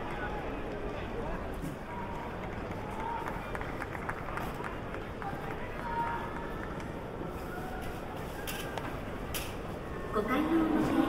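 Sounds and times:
stadium crowd hubbub: 0:00.0 - 0:11.0
individual voices: 0:10.1 - 0:11.0.

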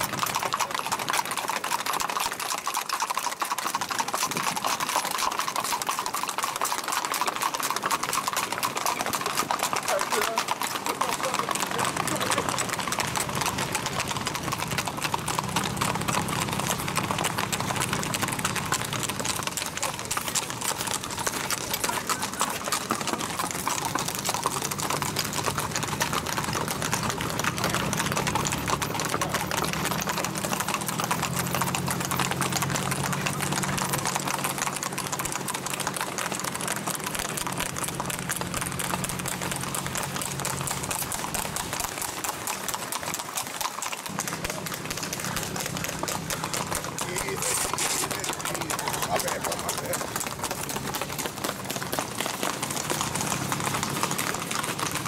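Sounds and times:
horse hooves on asphalt: 0:00.0 - 0:55.0.

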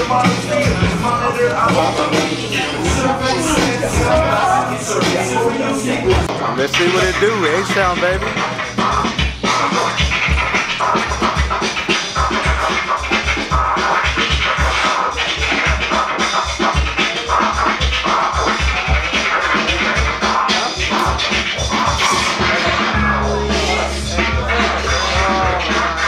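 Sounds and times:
hip-hop beat: 0:00.0 - 0:26.0
vinyl record scratching: 0:00.0 - 0:26.0.

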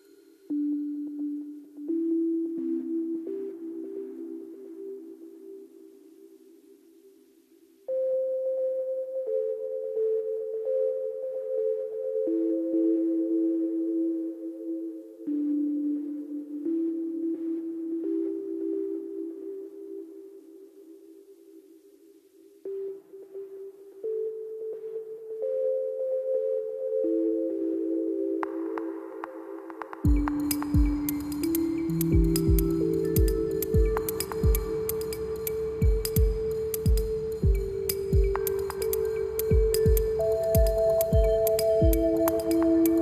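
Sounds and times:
ambient synth tones with reverb: 0:07.8 - 0:43.0.

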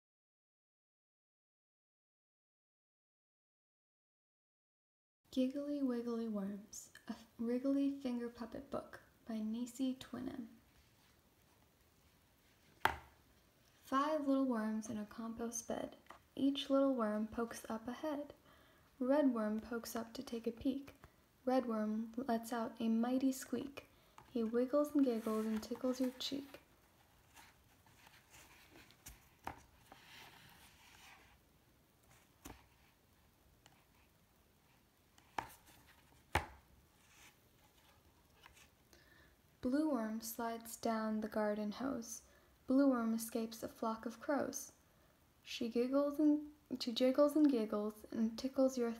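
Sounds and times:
book cover thumping on table: 0:12.8 - 0:13.1, 0:36.3 - 0:36.6
page being turned: 0:24.9 - 0:31.4, 0:32.1 - 0:32.9, 0:35.2 - 0:38.7.

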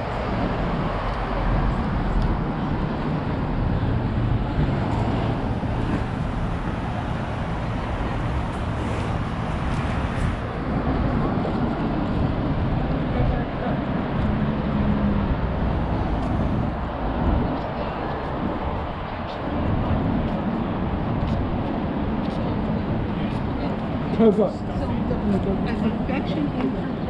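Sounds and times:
road traffic passing: 0:00.0 - 0:27.0
people talking: 0:13.0 - 0:13.9, 0:17.3 - 0:19.6, 0:22.2 - 0:27.0.

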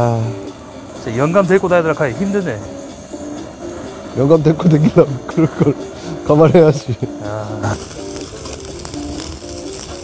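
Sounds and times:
meat sizzling on a grill: 0:00.0 - 0:10.0.

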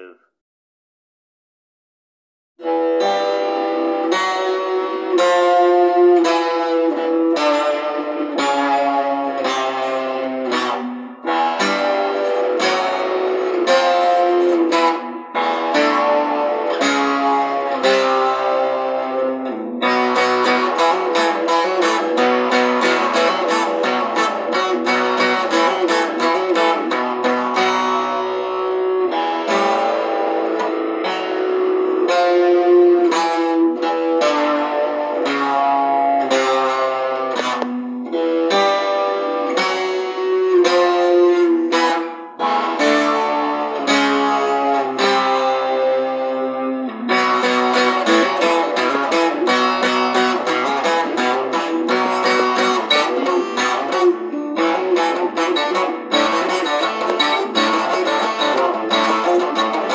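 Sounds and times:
acoustic guitar playing: 0:02.6 - 0:59.9.

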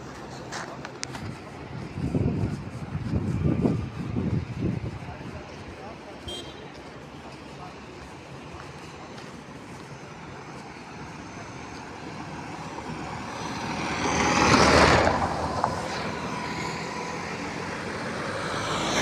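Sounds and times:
vehicle approaching: 0:00.0 - 0:19.0
vehicle passing by: 0:10.7 - 0:19.0.

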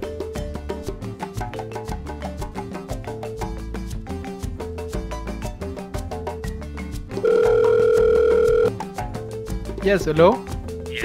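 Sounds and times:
background music with beat: 0:00.0 - 0:11.0
phone ringback tone: 0:07.2 - 0:08.8.

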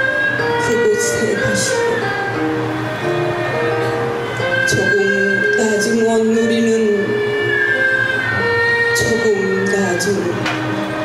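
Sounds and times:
bowed fiddle sliding high notes: 0:00.0 - 0:11.0
soft instrumental backing: 0:00.0 - 0:11.0.

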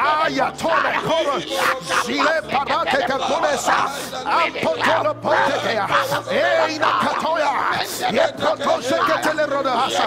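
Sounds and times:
sustained background music: 0:00.0 - 0:10.0.

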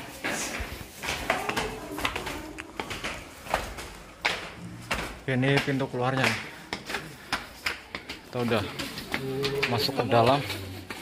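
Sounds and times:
footsteps climbing stairs: 0:00.0 - 0:11.0.

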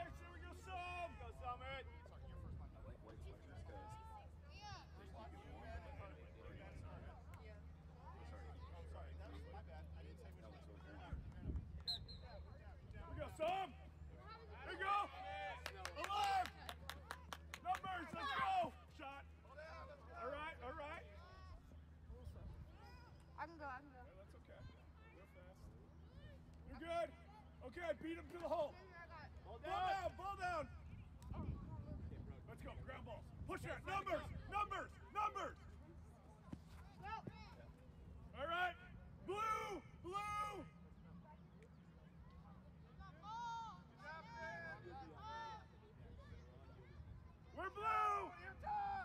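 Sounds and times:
short whistle: 0:11.8 - 0:12.5
players and spectators shouting: 0:13.2 - 0:16.5, 0:17.8 - 0:19.1, 0:33.5 - 0:35.6, 0:38.4 - 0:40.8, 0:47.4 - 0:49.0
distant shouting: 0:38.4 - 0:40.8.

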